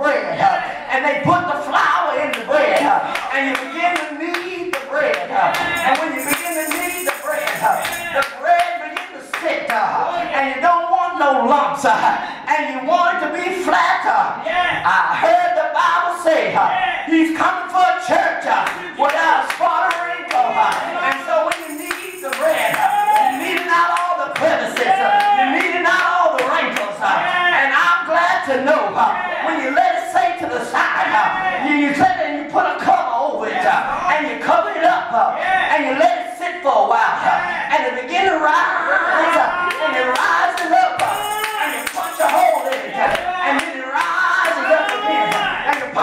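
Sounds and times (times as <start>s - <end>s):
man preaching in chanted cadence: 0.0s - 46.0s
rhythmic hand clapping: 2.8s - 9.4s, 18.6s - 26.9s, 39.7s - 46.0s.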